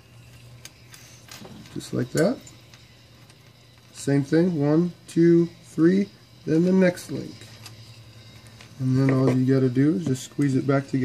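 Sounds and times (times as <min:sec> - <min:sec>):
metal chain links clinking: 0:00.6 - 0:11.0.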